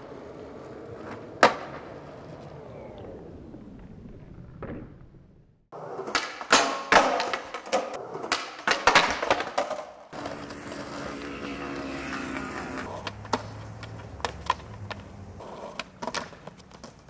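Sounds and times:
skateboard wheels rolling on asphalt: 0.0 - 17.0
skateboard clacking on concrete: 0.3 - 2.0, 5.8 - 17.0.

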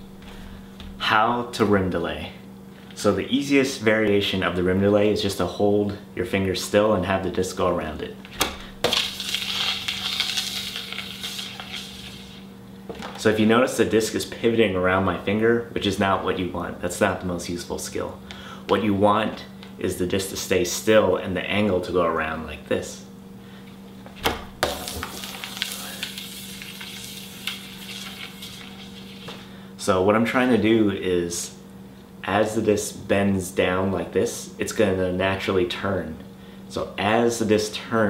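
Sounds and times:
spinning disc rim hissing on fingertip: 8.9 - 12.5, 24.7 - 29.4.

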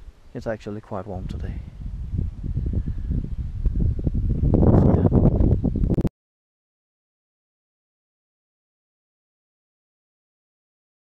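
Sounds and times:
wind buffeting microphone: 0.0 - 6.1.

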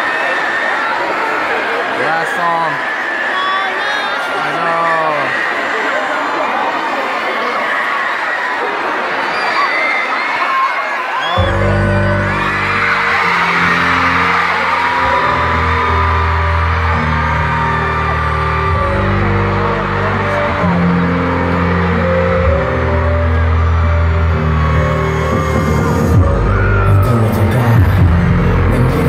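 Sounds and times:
fans screaming: 0.0 - 29.0
live concert music: 0.0 - 29.0
music beat: 11.4 - 29.0.

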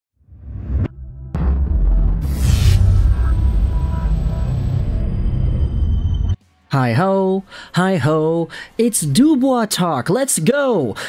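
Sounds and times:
low rumble: 0.2 - 6.4
deep throbbing bass drone: 0.3 - 6.4
percussive hit: 1.0 - 5.7.

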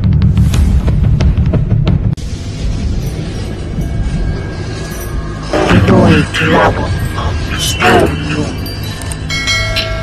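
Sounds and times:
bell chime: 3.0 - 10.0.

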